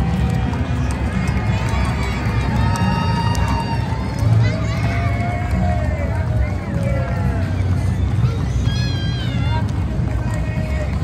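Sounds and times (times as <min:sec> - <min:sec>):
crowd voices: 0:00.0 - 0:11.0
horse hooves on pavement: 0:00.0 - 0:11.0.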